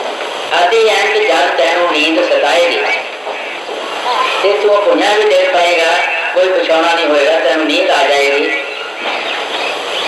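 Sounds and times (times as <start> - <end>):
man talking into microphone: 0.5 - 3.1, 4.4 - 8.8.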